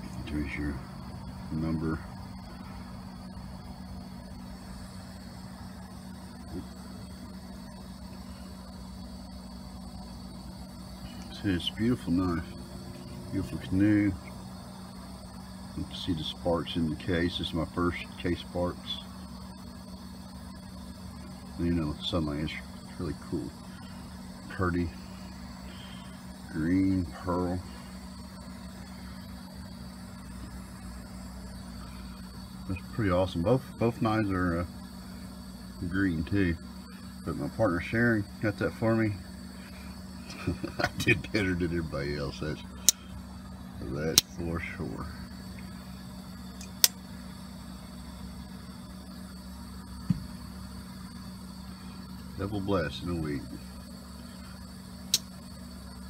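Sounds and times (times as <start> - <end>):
background hiss: 0.0 - 56.0
low mechanical hum: 0.0 - 56.0.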